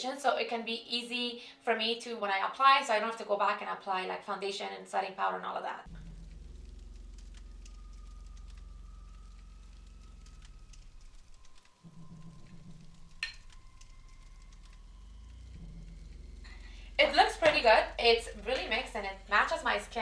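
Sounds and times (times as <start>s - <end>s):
low gliding drone: 5.9s - 20.0s.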